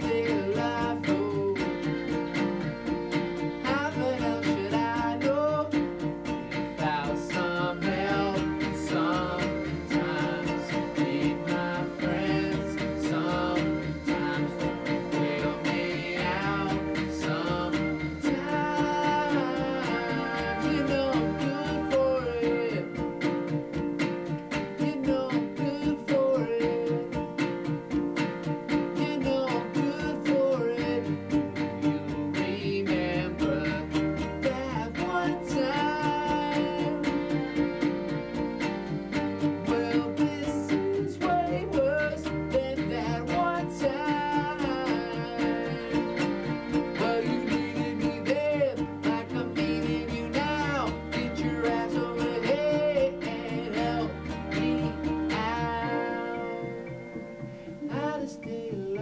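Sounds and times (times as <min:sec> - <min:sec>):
man singing: 0:00.0 - 0:57.0, 0:57.6 - 0:59.0
electric guitar strumming: 0:00.0 - 0:59.0.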